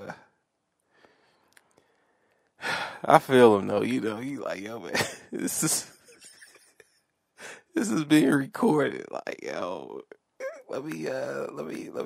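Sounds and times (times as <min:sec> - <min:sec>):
man sighing: 0:02.6 - 0:03.1, 0:07.4 - 0:07.8
man speaking: 0:02.7 - 0:06.5, 0:07.4 - 0:12.0.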